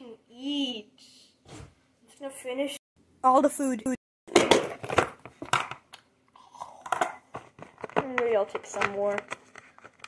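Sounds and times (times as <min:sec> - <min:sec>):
plastic container rustling and crinkling: 0:07.3 - 0:10.0.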